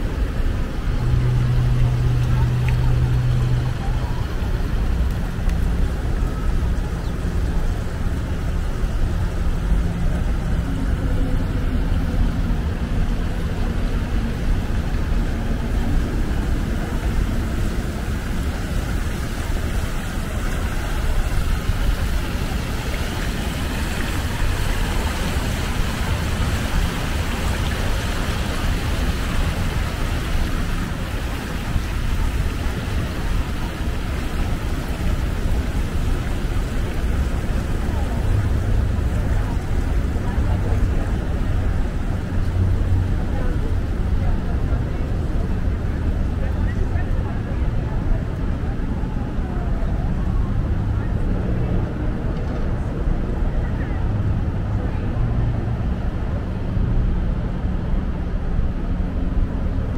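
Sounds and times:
fountain splashing into a pool: 0.0s - 57.9s
city traffic rumble: 0.0s - 59.9s
low steady hum: 0.0s - 59.9s.

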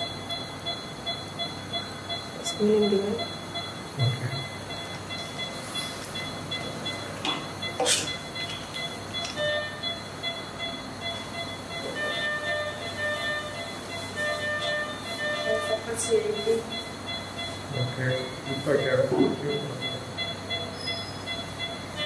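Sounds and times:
equipment humming: 0.0s - 22.0s
patient monitor beeping: 0.0s - 22.0s.

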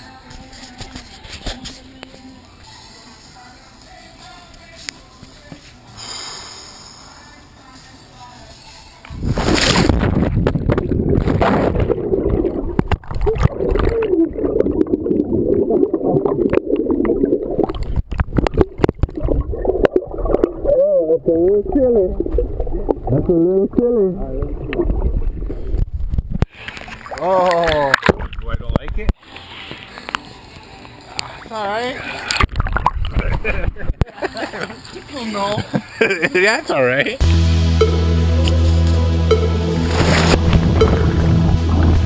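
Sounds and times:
camera plunging into pool: 9.2s - 20.6s
muffled underwater gurgling: 10.2s - 25.8s.

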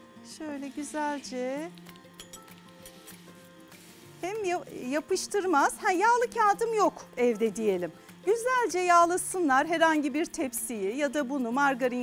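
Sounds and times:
quiet background music: 0.0s - 12.0s
spoon tapping metal sieve: 1.7s - 3.2s.

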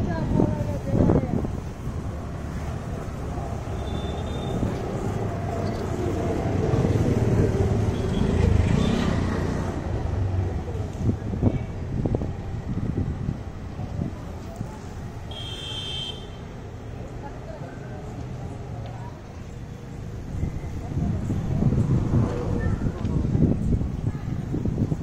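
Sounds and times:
low rumble of traffic: 0.0s - 25.0s.

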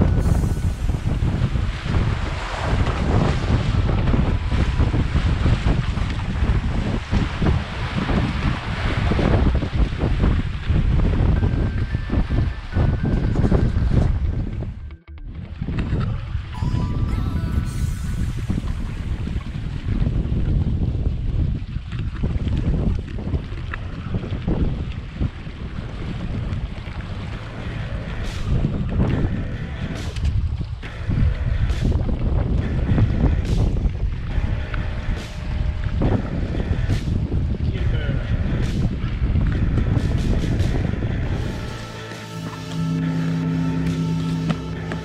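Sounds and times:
water rushing along hulls: 0.0s - 45.0s
water splashing against hull: 0.0s - 45.0s
wind buffeting microphone: 0.0s - 45.0s.

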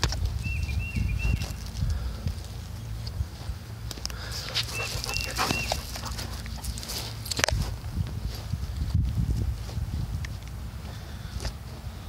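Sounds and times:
low wind rumble: 0.0s - 12.0s
rustles: 0.0s - 12.0s.

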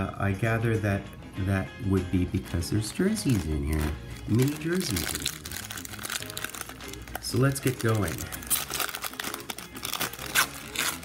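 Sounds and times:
wrapper crinkling and tearing: 2.8s - 11.0s.

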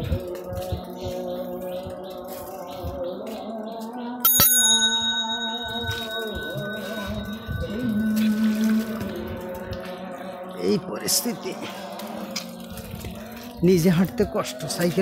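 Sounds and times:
background music: 0.0s - 15.0s
bicycle bell ding: 4.2s - 9.0s.

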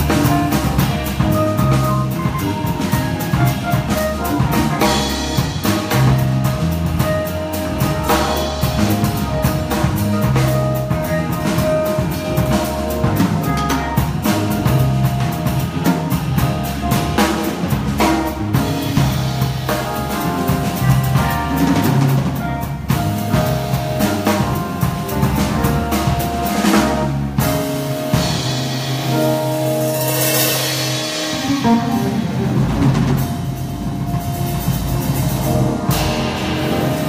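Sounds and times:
bass notes: 0.0s - 37.0s
drums and cymbals: 0.0s - 37.0s
keyboard chords: 0.0s - 37.0s.

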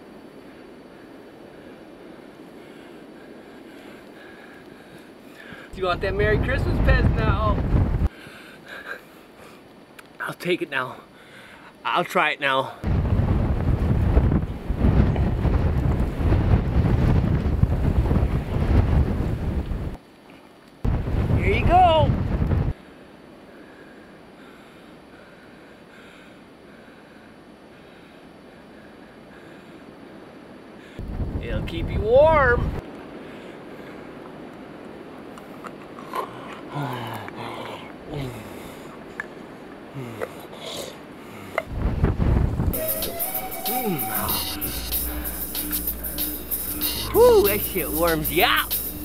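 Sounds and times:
wind buffeting microphone: 0.0s - 8.1s, 12.8s - 20.0s, 20.8s - 22.8s, 29.4s - 40.1s, 41.1s - 42.8s
low grunt: 36.0s - 38.6s.

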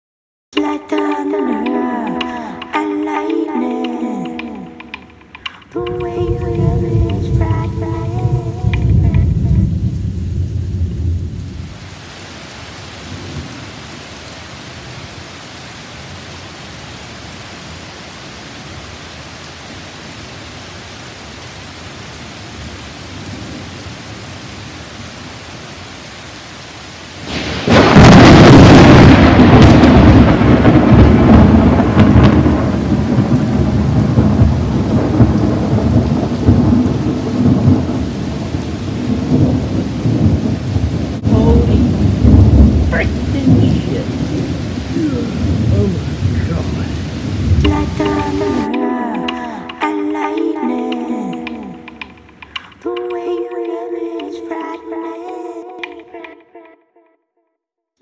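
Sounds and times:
steady rain falling: 0.6s - 56.0s
loud thunder clap: 5.9s - 11.8s, 27.2s - 48.8s
low thunder rumbling: 5.9s - 11.9s, 27.2s - 48.7s.

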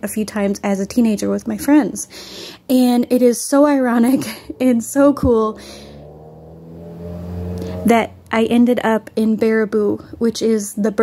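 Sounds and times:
motor vehicle engine drone: 0.9s - 10.4s.

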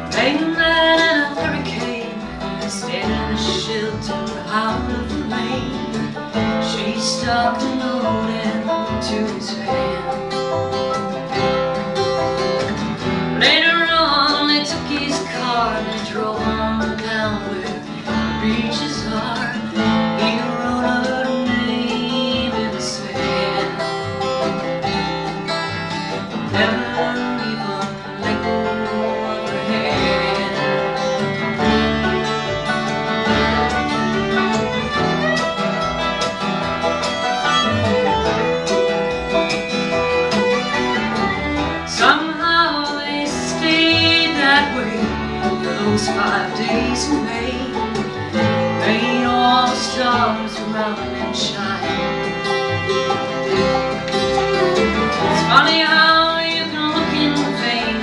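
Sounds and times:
banjo: 0.0s - 58.0s
fiddle: 0.0s - 58.0s
mandolin: 0.0s - 58.0s
strummed acoustic guitar: 0.0s - 58.0s
upright bass: 0.0s - 58.0s.

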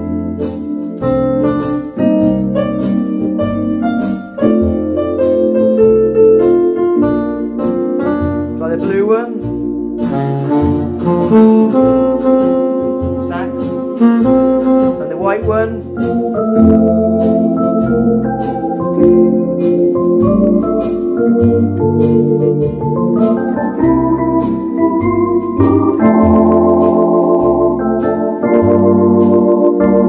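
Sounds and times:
electronic organ playing jazz: 0.0s - 30.0s
steady drum beat: 7.6s - 29.5s.

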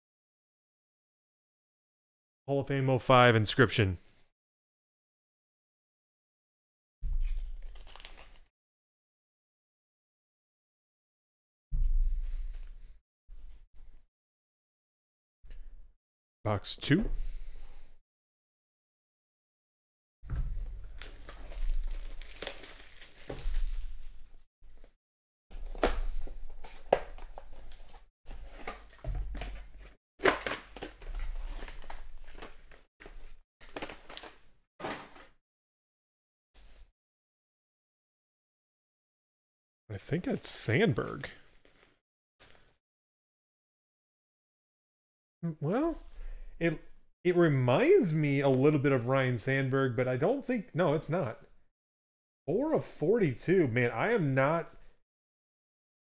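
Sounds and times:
foil bag crinkling: 7.3s - 8.4s, 20.7s - 24.4s, 30.2s - 35.3s
foil wrapper crinkling: 7.3s - 8.5s, 20.8s - 24.4s
cardboard box opened: 7.4s - 8.4s, 20.9s - 23.8s.

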